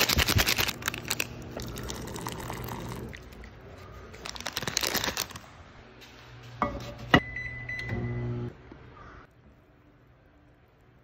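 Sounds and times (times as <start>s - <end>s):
microwave running hum: 5.9s - 10.9s.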